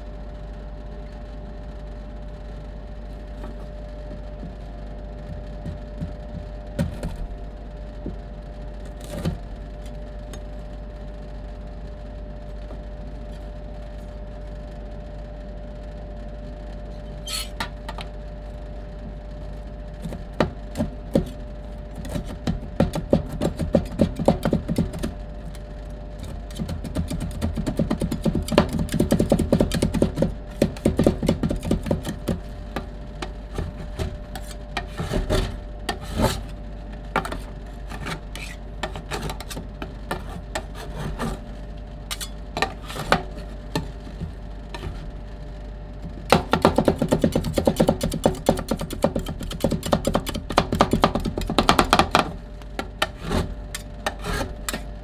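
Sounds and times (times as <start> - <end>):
steady low hum: 0.0 - 55.0
spatula scraping: 17.1 - 17.6, 33.2 - 36.6, 37.2 - 41.5, 42.1 - 45.2, 53.0 - 54.8
metal spatulas chopping on steel plate: 42.1 - 43.9, 46.4 - 51.9.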